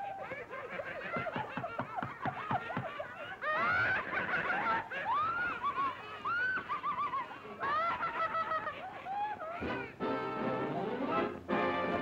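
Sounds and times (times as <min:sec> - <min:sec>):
cartoon characters laughing squeakily: 0:00.0 - 0:10.0.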